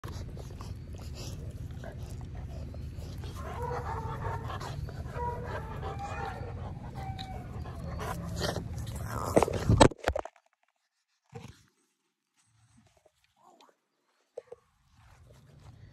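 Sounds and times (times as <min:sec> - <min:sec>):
dog whining: 0:00.1 - 0:09.6.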